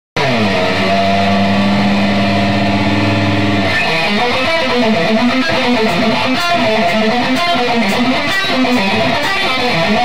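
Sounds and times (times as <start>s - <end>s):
band playing a riff: 0.2s - 10.0s
distorted electric guitar chord: 0.2s - 10.0s.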